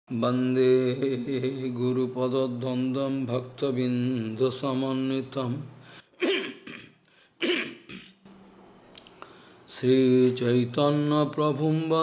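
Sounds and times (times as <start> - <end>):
man coughing: 6.1 - 8.2.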